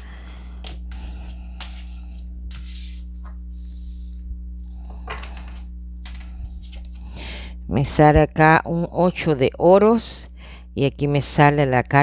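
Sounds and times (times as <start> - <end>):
low electrical hum: 0.0 - 12.0
cards rustling: 6.0 - 7.0.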